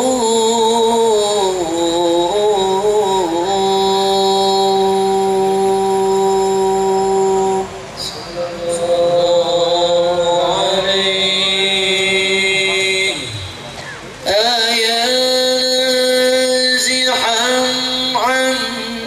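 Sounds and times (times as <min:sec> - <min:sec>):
man chanting long notes: 0:00.0 - 0:19.0.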